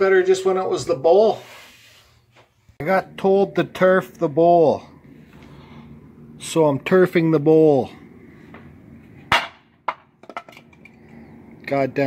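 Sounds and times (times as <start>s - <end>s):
wooden bowl knocking on pavement: 9.3s - 10.5s.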